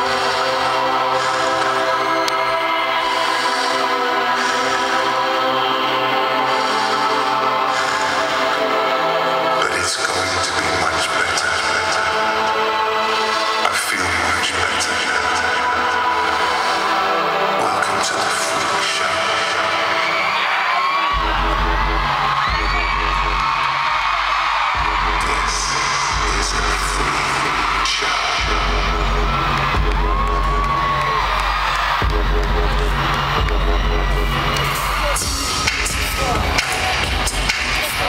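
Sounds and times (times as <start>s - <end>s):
live pop concert music: 0.0s - 38.0s
heavy bass beat: 21.1s - 38.0s.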